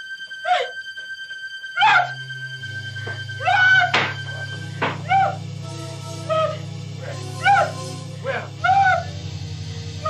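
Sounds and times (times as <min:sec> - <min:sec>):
held keyboard drone: 0:00.0 - 0:10.0
wordless cries falling in pitch: 0:01.6 - 0:10.0
low bass notes: 0:02.0 - 0:10.0.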